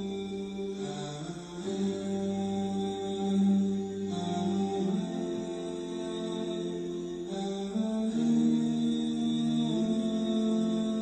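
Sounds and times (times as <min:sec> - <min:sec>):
slow chant-like vocal music: 0:00.0 - 0:11.0.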